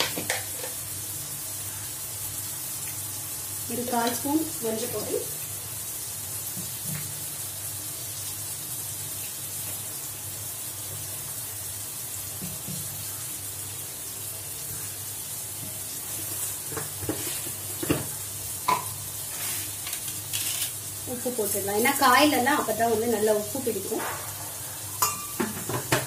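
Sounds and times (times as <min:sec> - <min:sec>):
vegetables sizzling in oil: 0:00.0 - 0:26.0.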